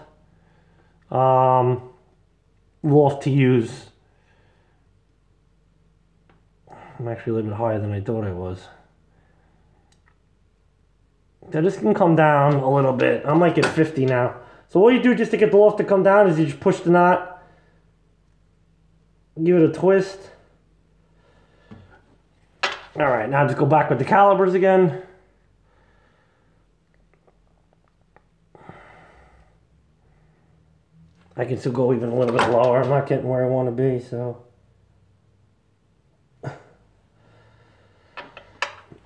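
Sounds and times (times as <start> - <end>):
man speaking: 1.1 - 2.0, 2.8 - 4.0, 6.9 - 8.9, 11.4 - 17.4, 19.4 - 20.5, 23.0 - 25.2, 31.4 - 34.5.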